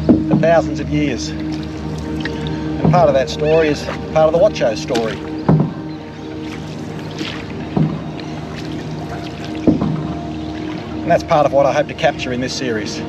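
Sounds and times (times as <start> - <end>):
background music: 0.0 - 13.0
paddle strokes through water: 0.0 - 13.0.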